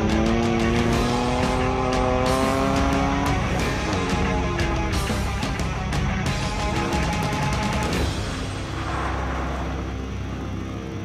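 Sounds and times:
car engine rumbling: 0.0 - 11.0
soundtrack music: 2.2 - 11.0
rushing noise: 8.0 - 11.0.

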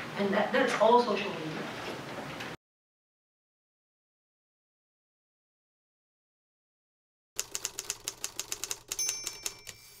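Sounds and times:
typewriter key clacks: 7.4 - 9.8
typewriter bell ding: 8.6 - 10.0.

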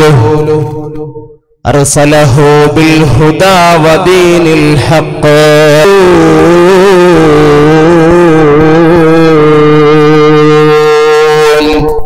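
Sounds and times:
man chanting through a microphone: 0.0 - 12.0.

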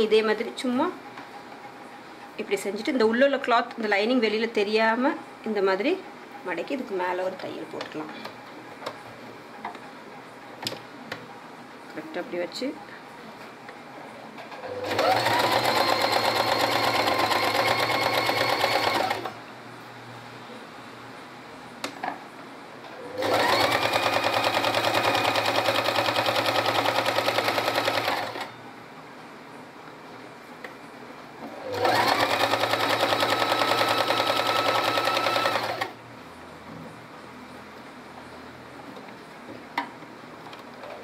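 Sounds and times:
electric sewing machine stitching: 14.6 - 19.3, 23.1 - 28.5, 31.5 - 36.0.

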